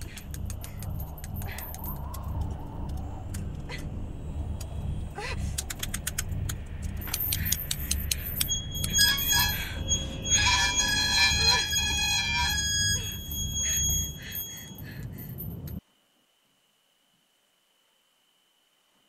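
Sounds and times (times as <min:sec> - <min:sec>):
sharp clicks: 0:00.0 - 0:03.6, 0:05.5 - 0:09.0
low rumble: 0:00.0 - 0:14.2
shrill sustained tones: 0:07.0 - 0:14.8.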